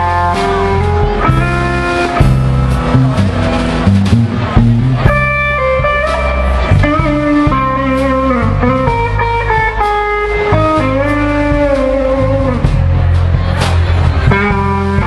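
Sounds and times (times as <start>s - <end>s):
live band playing: 0.0s - 15.0s.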